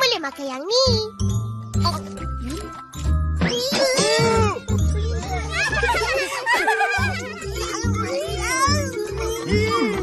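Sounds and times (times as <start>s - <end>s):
cartoon children wailing: 5.4s - 10.0s.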